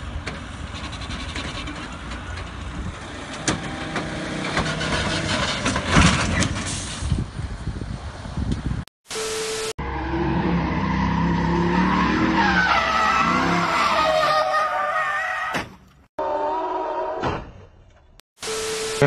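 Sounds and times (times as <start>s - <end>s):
car tyres squealing: 3.5s - 7.1s, 9.8s - 17.2s.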